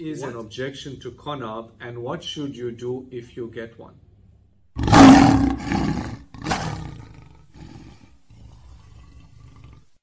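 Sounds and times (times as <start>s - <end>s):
lion roaring: 4.8s - 10.0s.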